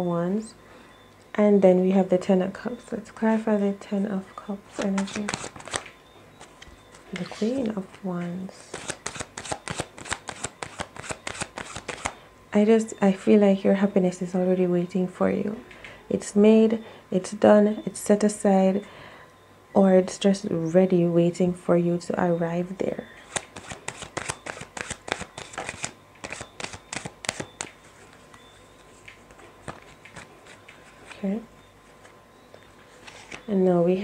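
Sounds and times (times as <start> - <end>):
cards being shuffled by hand: 4.7 - 8.0, 8.6 - 12.2, 23.2 - 28.4, 29.0 - 31.2, 32.9 - 33.5.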